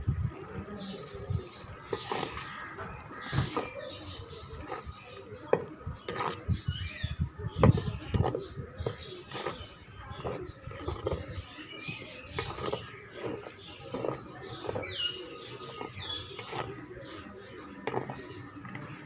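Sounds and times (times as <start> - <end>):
spoon stirring in metal pan: 7.8 - 18.4.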